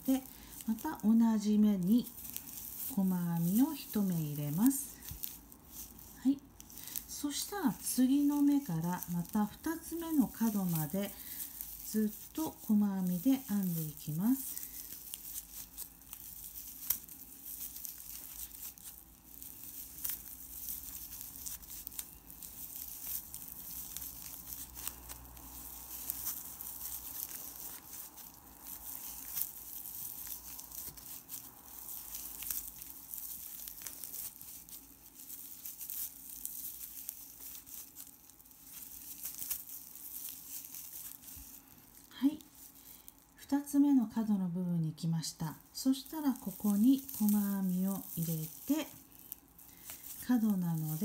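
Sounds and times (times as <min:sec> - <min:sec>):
yarn crinkling rustles: 0:00.0 - 0:51.0.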